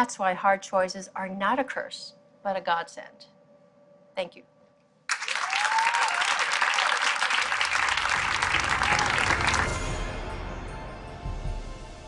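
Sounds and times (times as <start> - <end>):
audience applauding: 5.1 - 10.1.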